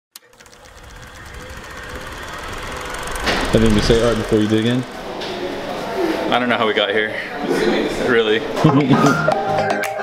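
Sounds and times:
rapid mechanical rattle: 0.2 - 8.5.

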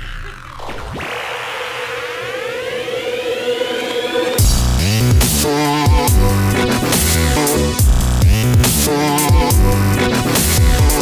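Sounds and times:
rising synth sweep: 0.0 - 7.8
held synth tone: 1.1 - 4.6.

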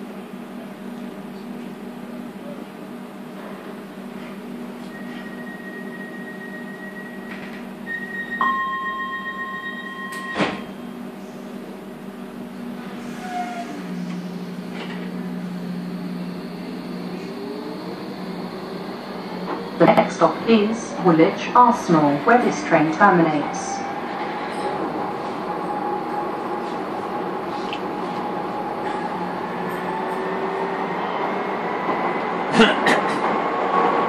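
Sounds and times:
low train motor hum: 0.0 - 34.0
door warning tone: 4.8 - 11.2, 12.6 - 22.1
train doors thudding shut: 10.0 - 10.7.

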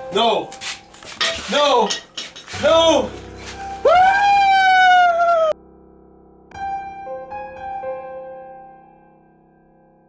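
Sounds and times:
man screaming: 3.8 - 5.6.

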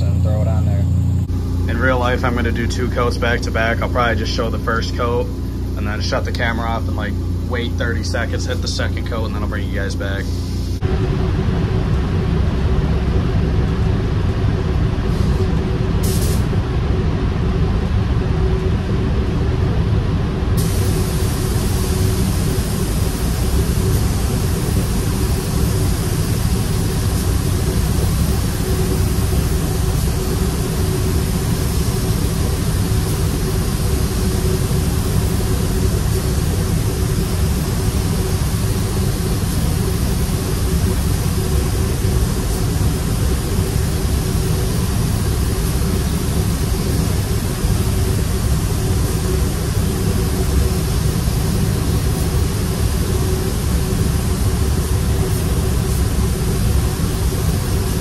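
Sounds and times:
steady hum: 0.0 - 58.0
ventilation airflow roar: 0.0 - 58.0
spray gun hissing: 1.2 - 10.8, 16.0 - 16.5, 20.6 - 58.0.

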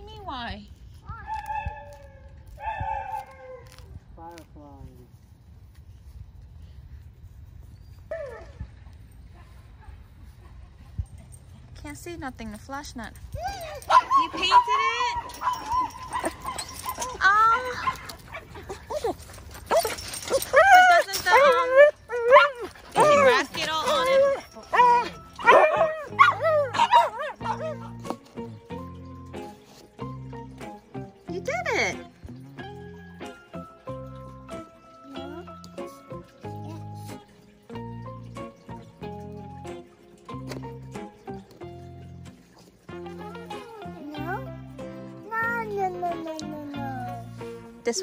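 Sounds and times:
small dog barking and yipping: 1.1 - 3.8, 8.1 - 8.6, 13.4 - 28.2
light regular percussion: 11.0 - 48.0
background music: 19.4 - 48.0.

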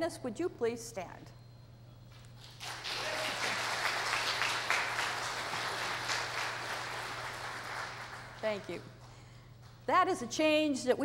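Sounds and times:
crowd clapping: 2.4 - 9.2.

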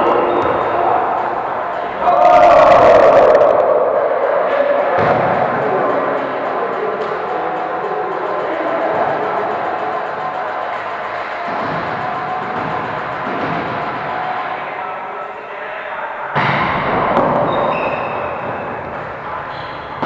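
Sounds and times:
players calling out: 0.0 - 15.6.

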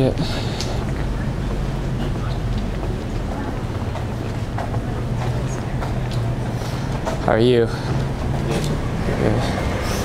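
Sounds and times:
footsteps on concrete sidewalk: 0.0 - 10.0
low hum of city street: 0.0 - 10.0.

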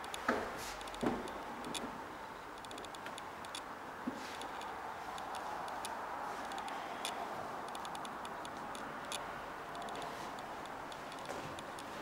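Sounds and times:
light irregular clicks: 0.0 - 1.9, 2.5 - 3.7, 4.4 - 12.0.

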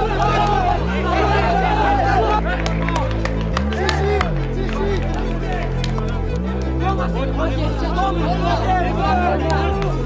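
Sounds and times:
music with deep bass line: 0.0 - 10.0
young men shouting and cheering: 0.0 - 10.0.

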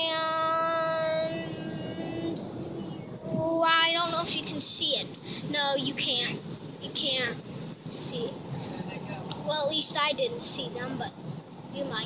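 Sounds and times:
road noise inside a car: 0.0 - 12.0.

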